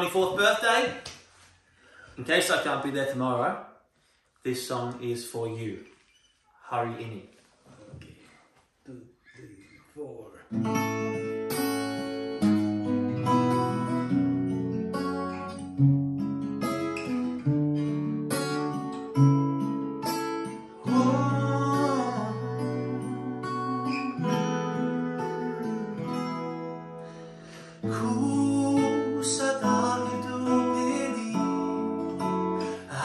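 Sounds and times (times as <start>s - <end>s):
acoustic guitars strummed and picked: 10.5s - 33.0s.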